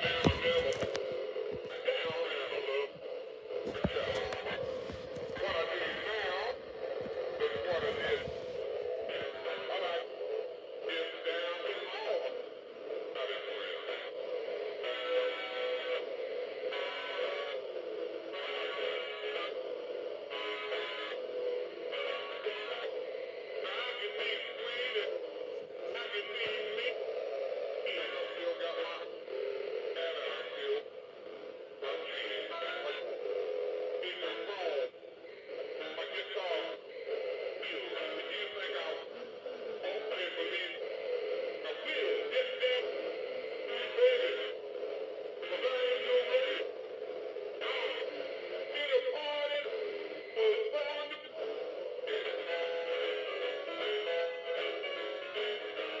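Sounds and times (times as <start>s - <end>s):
man singing through small speaker: 0.0s - 3.0s, 3.6s - 12.5s, 13.1s - 27.0s, 27.8s - 30.9s, 31.8s - 33.4s, 34.0s - 44.7s, 45.4s - 46.8s, 47.5s - 56.0s.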